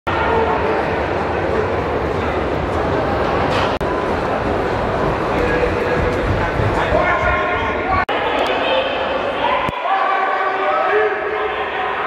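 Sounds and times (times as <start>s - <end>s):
crowd shouting and cheering: 3.3s - 12.0s.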